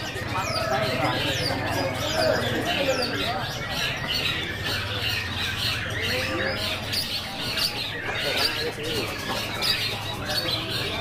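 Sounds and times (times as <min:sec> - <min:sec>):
birds chattering in chorus: 0:00.0 - 0:11.0.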